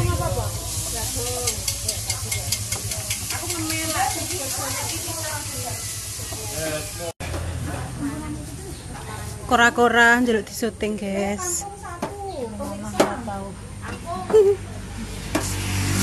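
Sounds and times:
food sizzling in a wok: 0:00.0 - 0:07.1
spatula tapping: 0:01.4 - 0:05.2.

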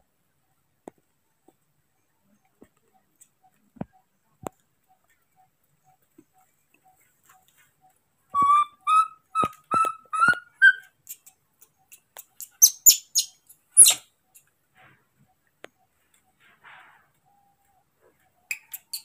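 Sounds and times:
baby monkey calling: 0:08.4 - 0:10.9, 0:12.4 - 0:14.0
monkey high-pitched squeaks: 0:08.4 - 0:11.3, 0:12.2 - 0:14.0, 0:18.5 - 0:19.0.

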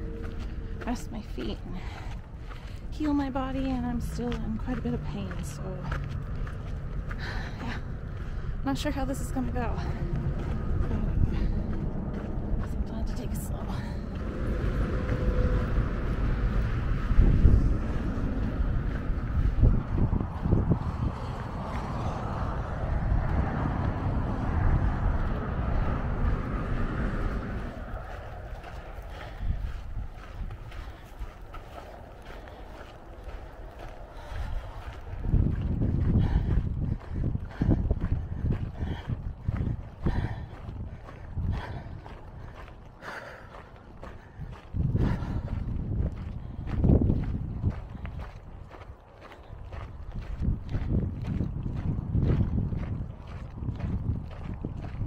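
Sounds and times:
footsteps: 0:00.0 - 0:55.0
wind buffeting microphone: 0:00.0 - 0:55.0.

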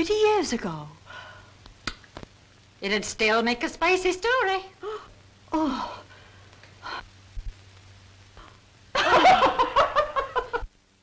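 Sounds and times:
woman laughing hard: 0:09.0 - 0:10.7.

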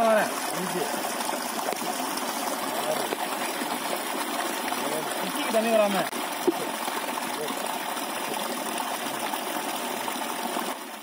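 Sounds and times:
water gushing from pipe: 0:00.0 - 0:11.0.

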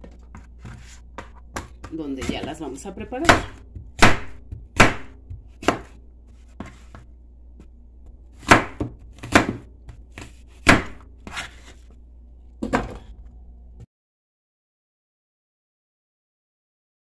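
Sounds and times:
knife chopping on plastic board: 0:00.3 - 0:07.0, 0:08.3 - 0:11.7.

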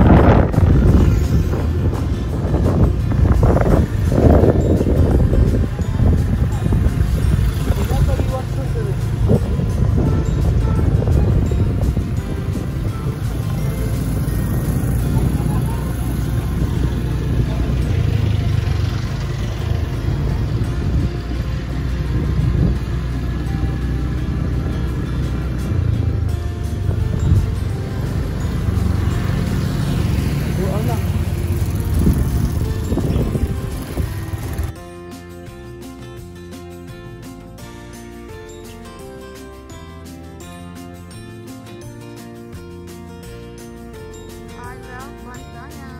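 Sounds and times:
background music: 0:00.0 - 0:45.9
moving vehicle rumble: 0:00.0 - 0:45.9.

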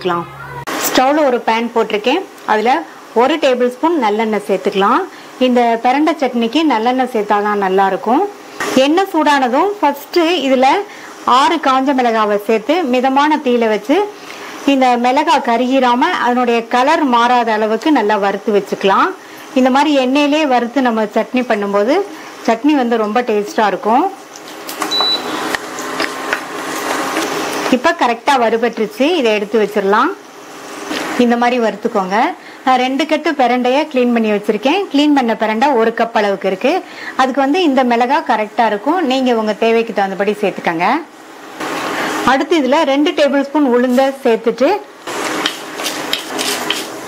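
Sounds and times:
chillies sizzling in hot oil: 0:00.7 - 0:32.1, 0:40.6 - 0:47.0
lentils sizzling in hot oil: 0:24.2 - 0:31.5, 0:45.0 - 0:47.0
wooden spatula scraping pan: 0:45.1 - 0:47.0.

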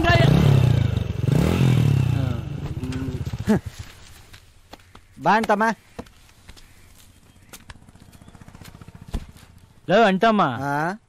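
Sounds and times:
motorcycle engine revving: 0:00.0 - 0:04.0, 0:07.1 - 0:09.9.

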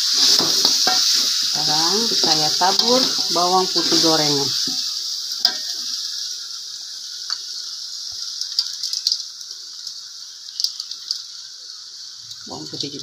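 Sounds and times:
food sizzling in a wok: 0:00.0 - 0:13.0.

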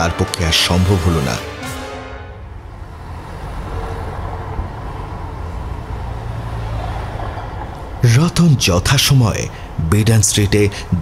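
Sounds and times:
passing vehicles rumble: 0:00.0 - 0:11.0.

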